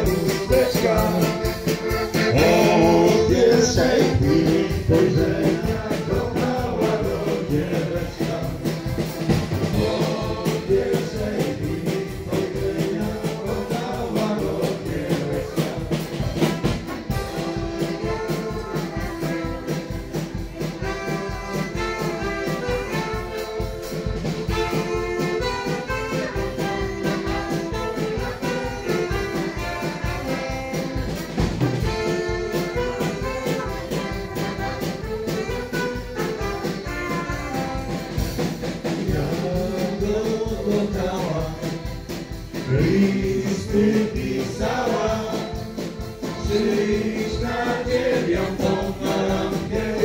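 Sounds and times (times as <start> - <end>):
live dance band playing: 0.0 - 50.0.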